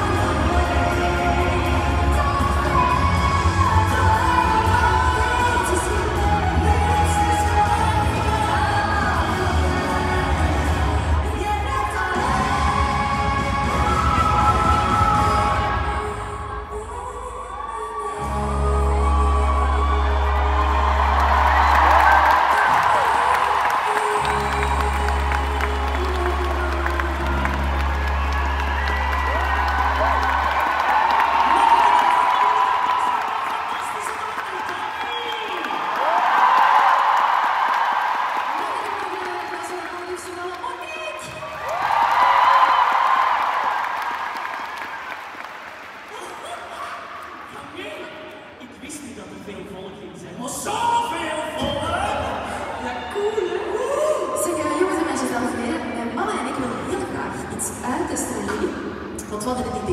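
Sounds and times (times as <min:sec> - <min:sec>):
women singing pop ballad with band: 0:00.0 - 0:21.6
audience cheering and whooping: 0:17.2 - 0:48.0.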